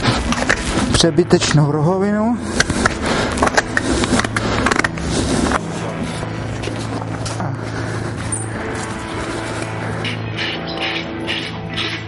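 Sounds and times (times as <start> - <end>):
hoof trimming scraping: 0.0 - 1.0, 2.4 - 12.0
background music low tones: 0.0 - 12.0.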